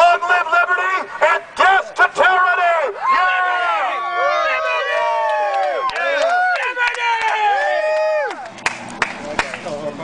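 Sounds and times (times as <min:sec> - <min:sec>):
people whooping and cheering: 0:02.9 - 0:08.9
scattered claps: 0:05.2 - 0:10.0.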